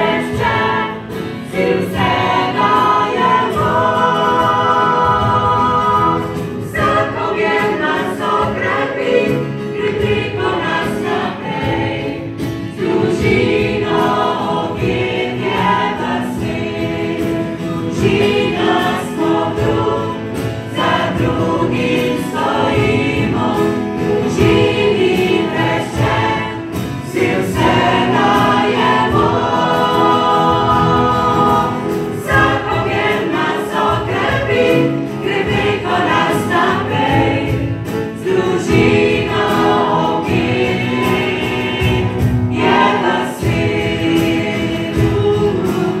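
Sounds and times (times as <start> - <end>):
group singing: 0.0 - 46.0
guitar playing: 0.0 - 46.0.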